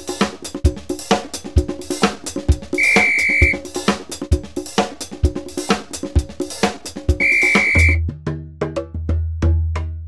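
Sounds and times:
music with drum hits: 0:00.0 - 0:10.0
clicking percussion beat: 0:02.8 - 0:03.6, 0:07.2 - 0:08.0
whistle blast: 0:02.8 - 0:03.6, 0:07.2 - 0:08.0.

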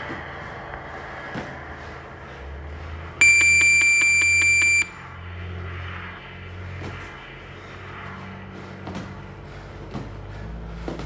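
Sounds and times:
shrill gym timer beep: 0:03.2 - 0:05.0.

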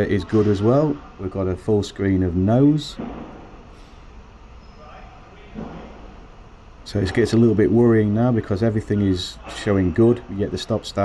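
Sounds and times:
man speaking: 0:00.0 - 0:03.0, 0:06.8 - 0:11.0
low background hum: 0:00.0 - 0:11.0.

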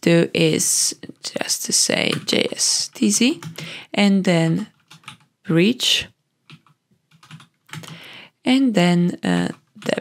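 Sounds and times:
keystrokes on computer keyboard: 0:02.0 - 0:03.7, 0:04.7 - 0:05.3, 0:06.4 - 0:08.0.

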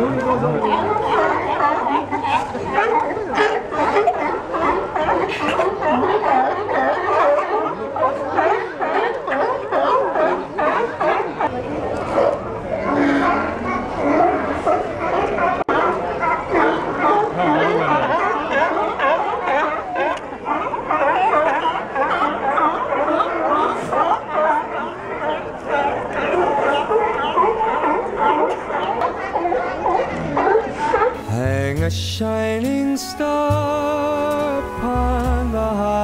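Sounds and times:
sea lions barking: 0:00.0 - 0:31.5.

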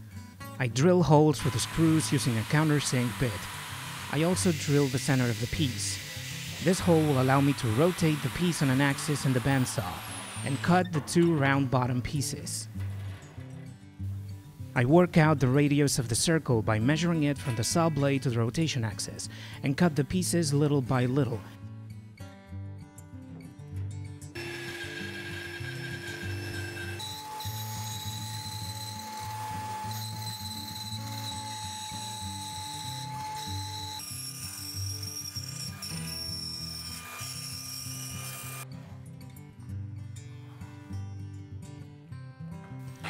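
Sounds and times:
background music: 0:00.0 - 0:39.0
high whine of saw: 0:01.4 - 0:10.9, 0:24.4 - 0:38.6
bandsaw cutting plywood: 0:01.4 - 0:11.6, 0:24.4 - 0:38.7.

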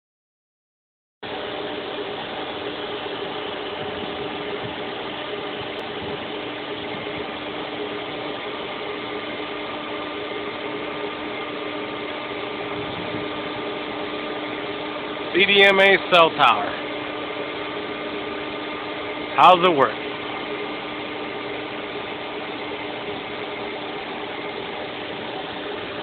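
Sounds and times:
machinery hum with tones: 0:01.2 - 0:26.0.

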